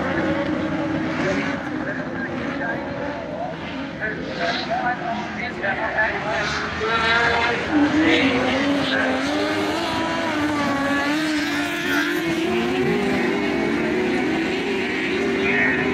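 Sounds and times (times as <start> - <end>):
race car engines droning: 0.0 - 15.9.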